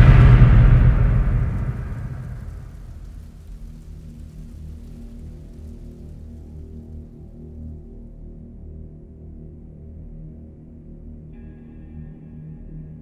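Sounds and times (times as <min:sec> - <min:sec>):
deep boom: 0:00.0 - 0:04.3.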